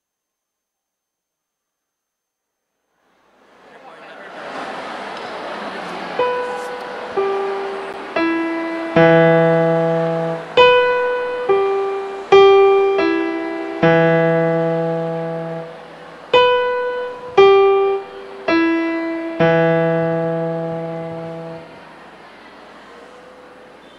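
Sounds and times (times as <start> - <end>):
background noise rush: 2.8 - 23.9
piano notes and chords: 5.8 - 22.4.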